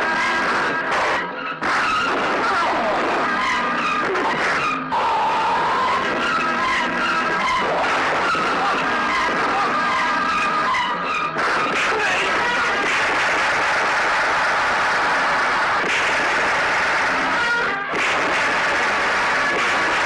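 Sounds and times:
dense loud din: 0.0 - 20.0
tyres screeching: 0.0 - 20.0.

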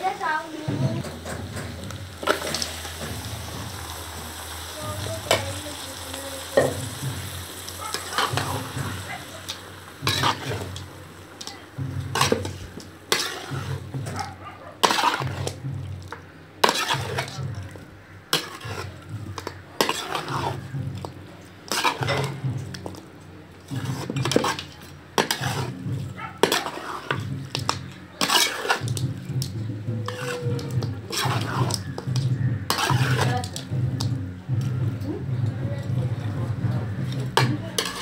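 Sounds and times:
metal spatula scraping a wok: 0.0 - 5.6, 6.6 - 23.0, 23.6 - 34.6, 36.8 - 38.0.

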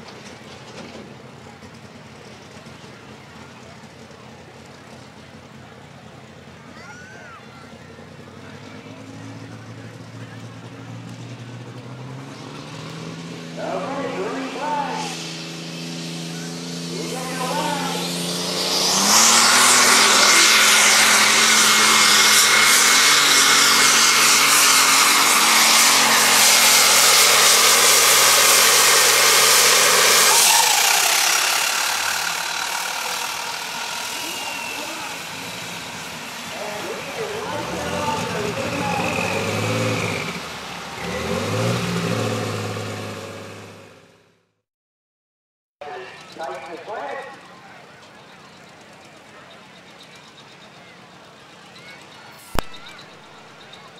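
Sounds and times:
pulling tractor engine roaring: 0.0 - 44.4, 45.8 - 53.9
person speaking: 16.9 - 18.1.

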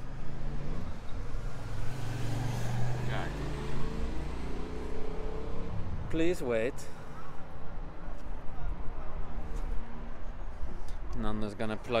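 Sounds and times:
low traffic rumble: 0.0 - 12.0.

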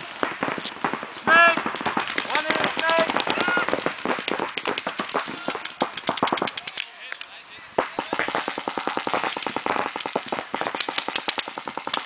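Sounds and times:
paintball markers firing: 0.0 - 12.0
players shouting: 1.2 - 4.2.

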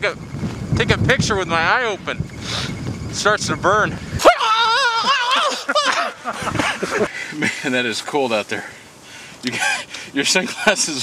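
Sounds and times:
wind buffeting microphone: 0.0 - 9.0
man's falsetto cry: 4.2 - 6.3.

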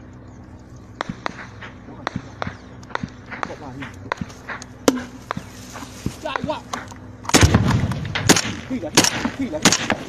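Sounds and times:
low rumble: 0.0 - 10.0
sharp gunshots: 1.0 - 5.5, 7.3 - 10.0
loud gunshot: 7.3 - 10.0.

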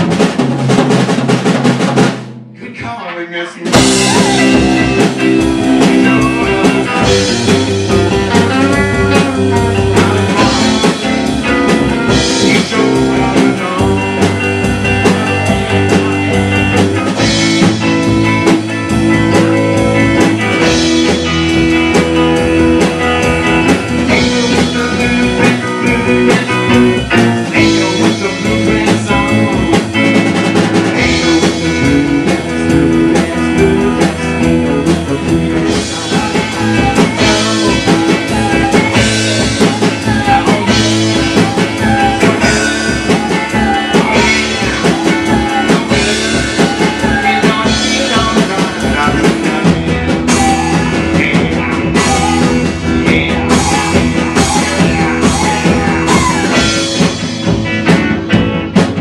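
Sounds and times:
bass guitar: 0.0 - 59.0
drum kit: 0.0 - 59.0
electric guitar: 3.6 - 59.0.

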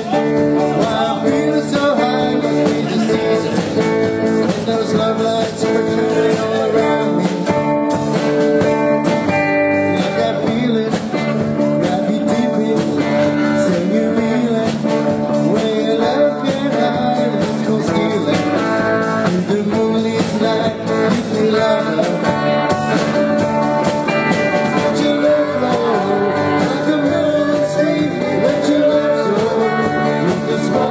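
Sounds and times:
drum kit: 0.0 - 30.9
electric guitar: 0.0 - 30.9.

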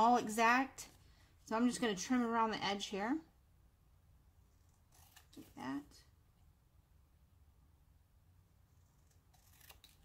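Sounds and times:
low steady room hum: 0.0 - 10.0
scissors snipping poster board: 9.1 - 10.0.

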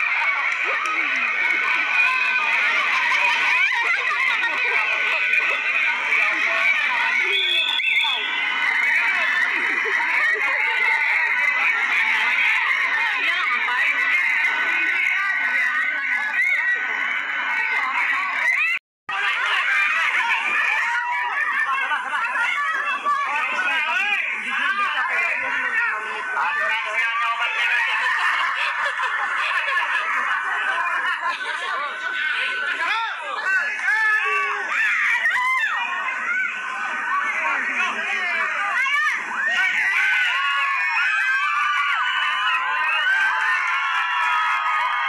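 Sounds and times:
crowd shrieking and laughing: 0.0 - 45.0.

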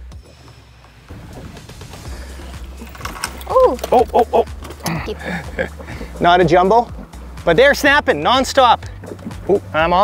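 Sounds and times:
person exclaiming: 3.5 - 5.4.

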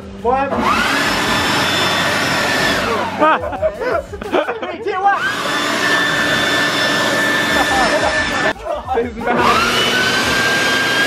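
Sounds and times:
leaf blower running: 0.5 - 3.5, 5.1 - 8.5, 9.3 - 11.0.

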